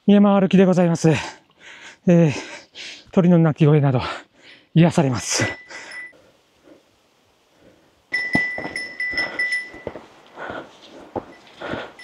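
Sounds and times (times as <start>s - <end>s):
footsteps on rocky trail: 8.1s - 12.0s.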